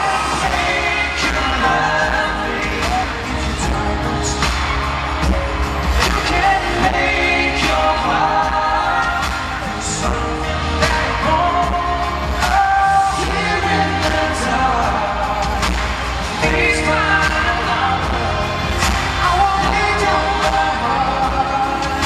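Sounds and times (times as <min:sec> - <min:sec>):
band with heavy bass and drums: 0:00.0 - 0:22.0
man singing into a microphone: 0:00.0 - 0:22.0.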